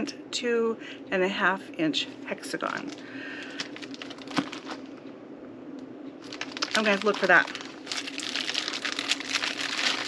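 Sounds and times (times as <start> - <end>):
low steady hum: 0.0 - 10.0
plastic pieces clicking and crinkling: 6.2 - 10.0.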